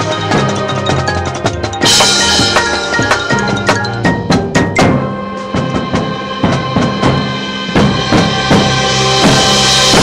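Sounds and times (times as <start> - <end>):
marching band playing: 0.0 - 10.0
rapid drum hits: 1.0 - 10.0
cymbal crash: 5.2 - 10.0.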